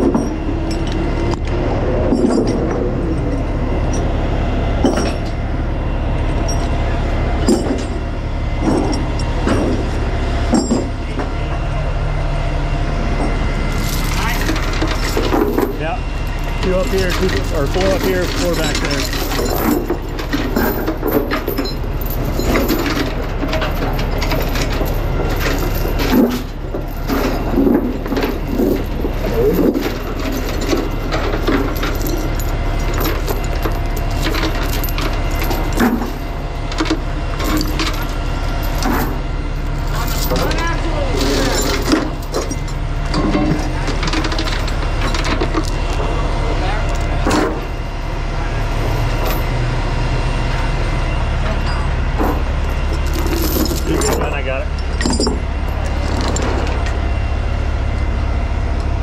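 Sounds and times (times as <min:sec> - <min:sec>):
truck engine idling: 0:00.0 - 0:59.0
chains clinking and rattling: 0:02.0 - 0:04.2, 0:04.8 - 0:05.4, 0:07.4 - 0:11.1, 0:13.2 - 0:45.9, 0:46.6 - 0:49.7, 0:50.8 - 0:57.0.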